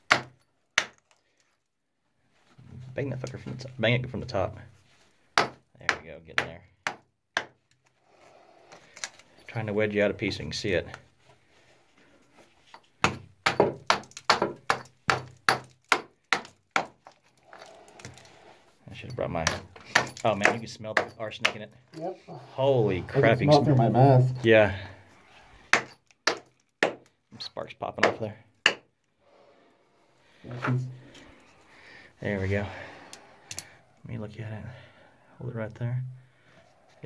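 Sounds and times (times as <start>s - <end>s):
hammer clinking on rock: 12.7s - 16.9s, 19.0s - 21.7s, 25.7s - 27.1s.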